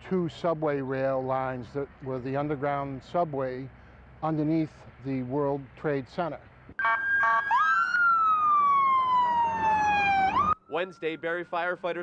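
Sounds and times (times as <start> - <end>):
emergency vehicle siren wailing: 6.8 - 12.0.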